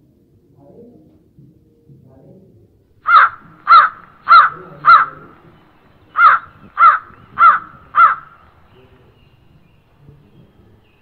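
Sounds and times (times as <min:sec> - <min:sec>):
crow cawing: 0:03.0 - 0:08.6.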